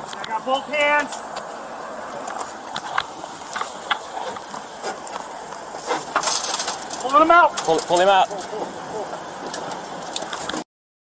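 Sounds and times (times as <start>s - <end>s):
outdoor background noise: 0.0s - 10.7s.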